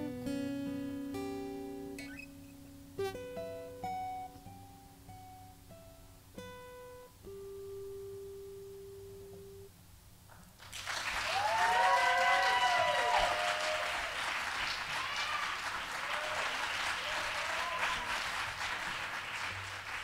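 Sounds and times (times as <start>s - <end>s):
acoustic guitar note ringing: 0.0s - 9.8s
audience applause and cheers: 10.6s - 20.0s.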